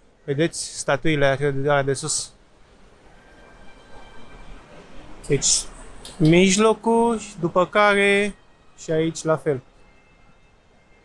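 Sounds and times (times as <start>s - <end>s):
faint high whine: 0.0s - 11.0s
low traffic rumble: 0.0s - 11.0s.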